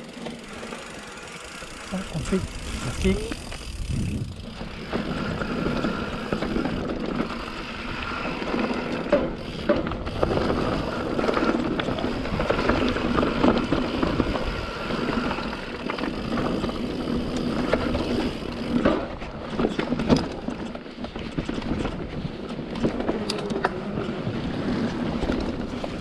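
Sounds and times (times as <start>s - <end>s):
bike tyres rolling on dirt trail: 0.0s - 26.0s.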